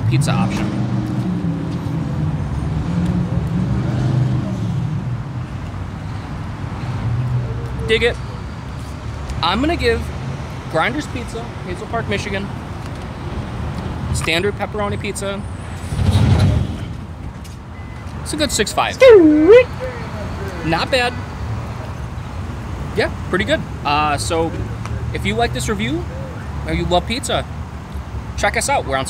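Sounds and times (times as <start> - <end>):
road traffic engine hum: 0.0 - 29.0.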